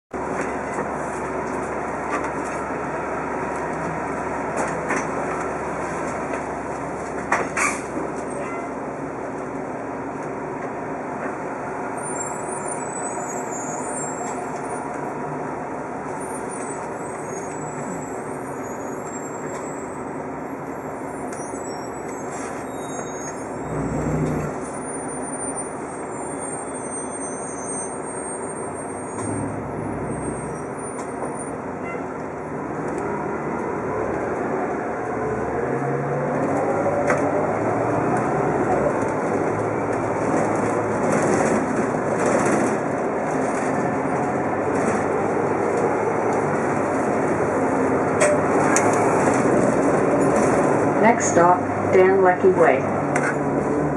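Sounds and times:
bus diesel engine drone: 0.2 - 53.9.

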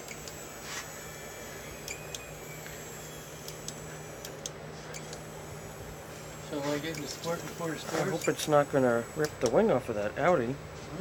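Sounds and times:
low electric hum: 0.0 - 11.0.

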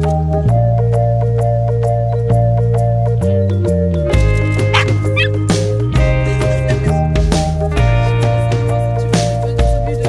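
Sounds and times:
background music: 0.0 - 10.0
small dog yapping: 4.6 - 5.6.

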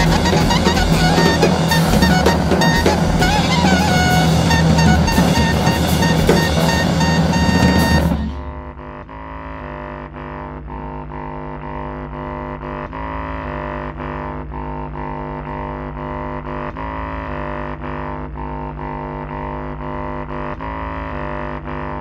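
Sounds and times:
improvised band music: 0.0 - 8.5
crashing cymbals: 0.0 - 8.6
drone of sustained tones: 0.0 - 9.2.

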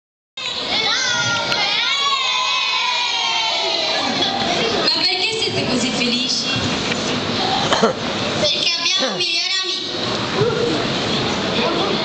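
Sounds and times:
children calling out: 0.4 - 4.9.

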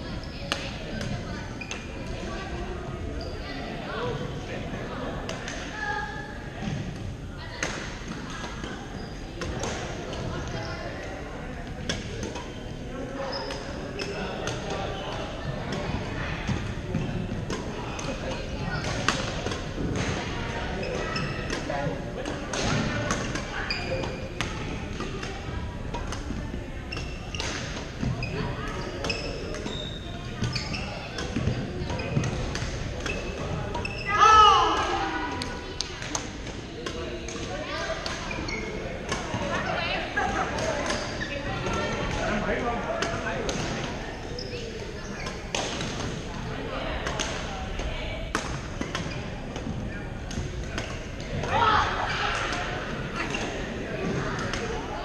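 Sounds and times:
murmur of voices: 0.0 - 55.0
racket striking shuttlecocks: 45.2 - 46.2.

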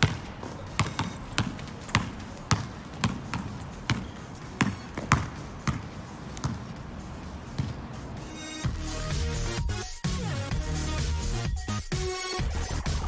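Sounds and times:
basketball dribbled on tiles: 0.0 - 7.0.

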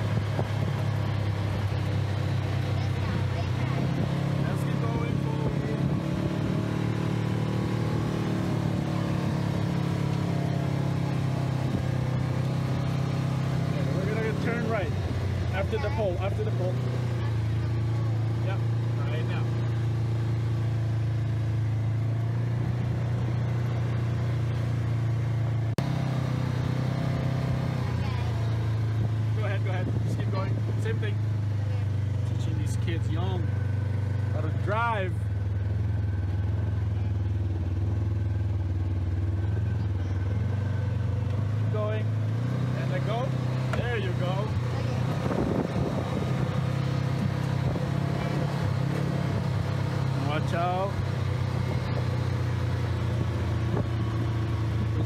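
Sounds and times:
utility vehicle engine droning: 0.0 - 55.0.

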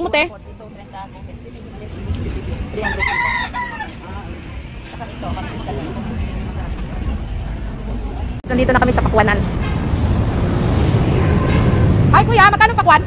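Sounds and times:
market background noise: 0.0 - 13.0
rooster crowing: 2.8 - 4.2.

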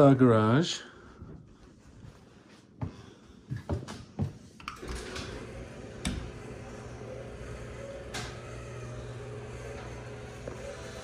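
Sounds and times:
garage door opener click: 4.6 - 10.4
garage door motor humming: 4.6 - 11.0.

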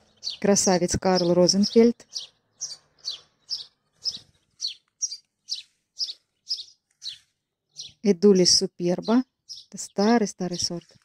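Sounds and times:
songbird chirping: 0.0 - 11.0.

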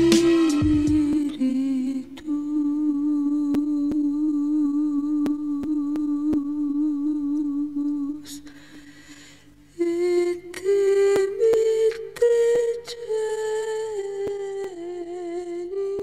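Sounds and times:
person humming a long note: 0.0 - 8.4.

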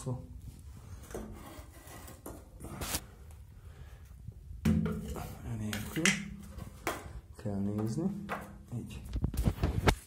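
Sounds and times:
scraping on tiled floor: 0.6 - 3.1.

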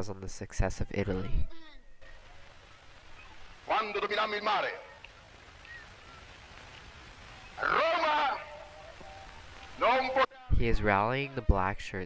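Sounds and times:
recording hiss: 0.0 - 12.0
man speaking loudly: 3.7 - 5.0, 7.6 - 8.7, 9.8 - 12.0.

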